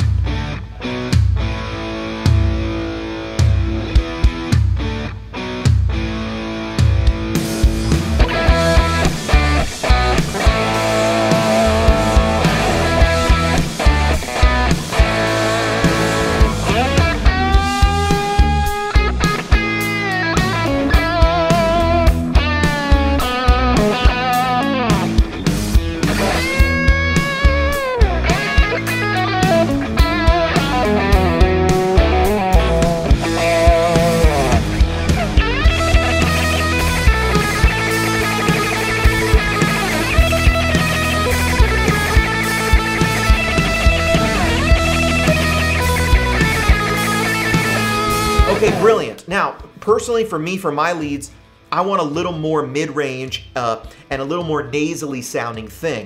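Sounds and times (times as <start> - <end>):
overdriven electric guitar lead: 0.0 - 49.2.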